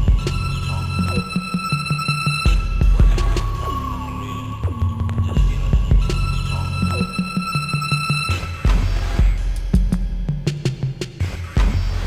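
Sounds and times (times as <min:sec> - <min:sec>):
deep throbbing bass: 0:00.0 - 0:12.0.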